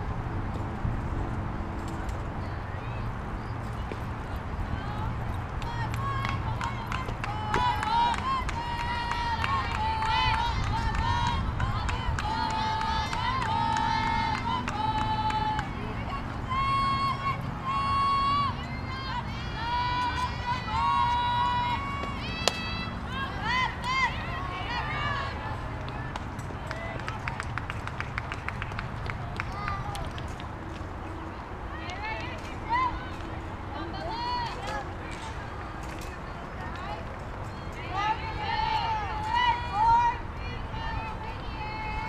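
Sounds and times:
girls chanting cheers: 4.7 - 27.2
bat hitting ball: 22.4 - 22.7.

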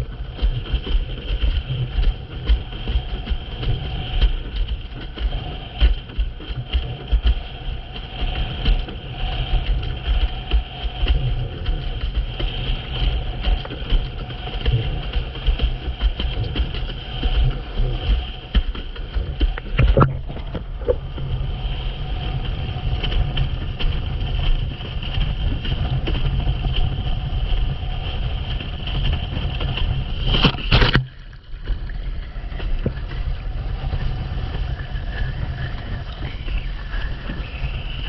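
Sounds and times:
water rushing under board: 0.0 - 38.0
wind buffeting microphone: 0.0 - 38.0.

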